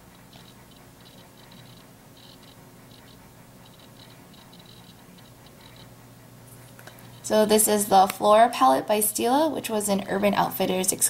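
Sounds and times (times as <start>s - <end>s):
faint low hum: 0.0s - 11.0s
scratchy ticks: 0.1s - 6.0s.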